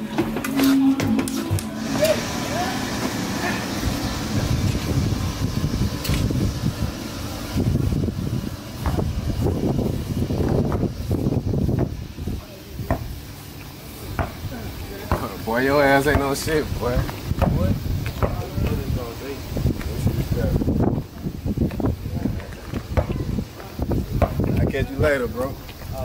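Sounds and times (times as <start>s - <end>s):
indistinct voices talking: 0.0s - 26.0s
steady background noise: 0.0s - 26.0s.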